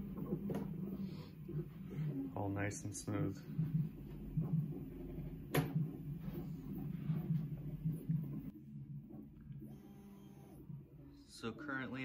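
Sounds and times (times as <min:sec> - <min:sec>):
printer stepper motors humming: 0:00.0 - 0:12.0.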